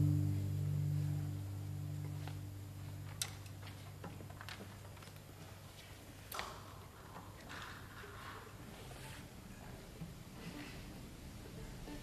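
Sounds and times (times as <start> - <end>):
low held tone: 0.0 - 3.6.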